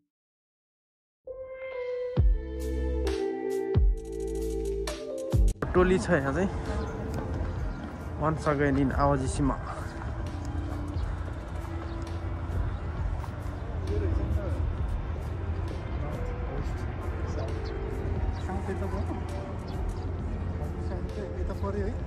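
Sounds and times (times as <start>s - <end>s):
faint indistinct voices: 5.6s - 22.0s
footsteps on paving: 6.6s - 15.0s.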